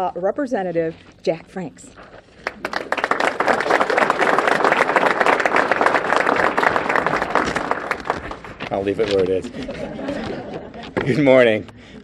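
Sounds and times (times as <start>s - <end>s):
audience clapping: 2.3s - 10.6s.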